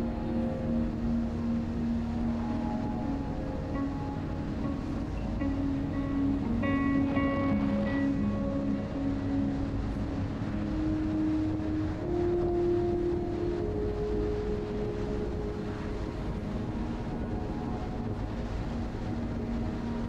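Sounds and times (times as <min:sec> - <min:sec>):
road and wind noise: 0:00.0 - 0:20.0.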